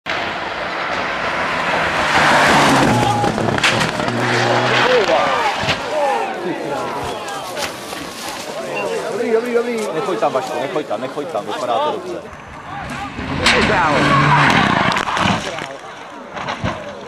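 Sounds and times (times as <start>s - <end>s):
tyre and road noise: 0.0s - 17.0s
rally car engine at high revs: 0.1s - 5.8s, 12.9s - 15.7s
spectators shouting: 2.1s - 9.1s, 11.7s - 15.3s.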